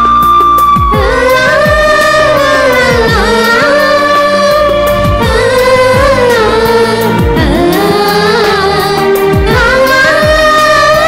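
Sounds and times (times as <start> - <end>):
voices singing long notes: 0.0 - 11.0.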